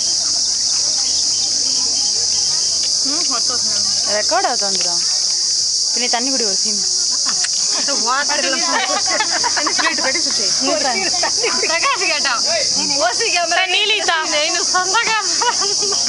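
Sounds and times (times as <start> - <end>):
insect chorus drone: 0.0 - 16.0.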